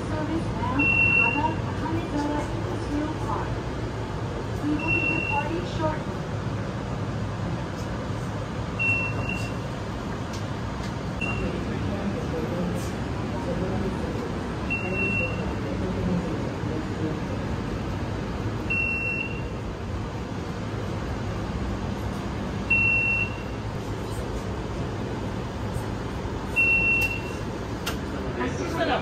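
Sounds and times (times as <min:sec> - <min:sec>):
low hum of tram interior: 0:00.0 - 0:29.0.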